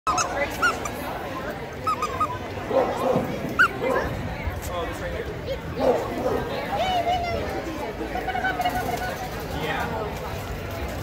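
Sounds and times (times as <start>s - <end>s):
dog whimpering yips: 1.8s - 2.4s.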